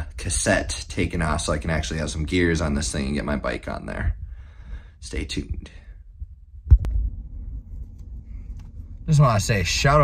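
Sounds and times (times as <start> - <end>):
steady low rumble: 0.0 - 10.0
low thump: 6.6 - 7.4.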